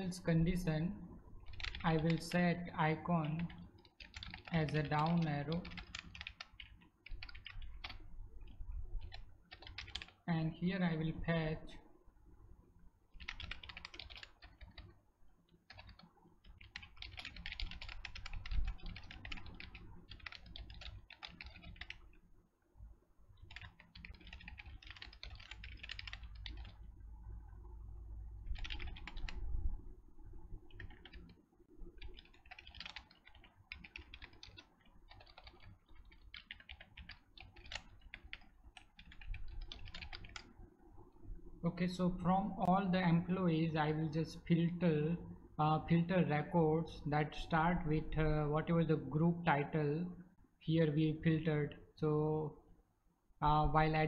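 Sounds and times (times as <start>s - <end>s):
typing on a computer keyboard: 1.4s - 2.3s, 3.2s - 10.2s, 13.2s - 22.2s, 23.4s - 26.9s, 28.4s - 29.4s, 30.6s - 40.6s.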